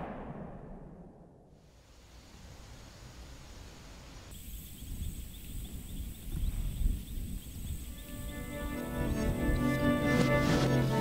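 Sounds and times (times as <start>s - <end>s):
insects chirping: 1.6s - 11.0s
high insect tone: 1.8s - 11.0s
low wind rumble: 2.2s - 11.0s.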